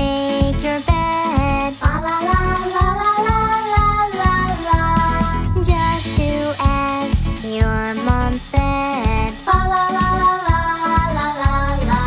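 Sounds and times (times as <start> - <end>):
backing track with steady beat: 0.0 - 12.0
child-like voice singing: 0.0 - 12.0.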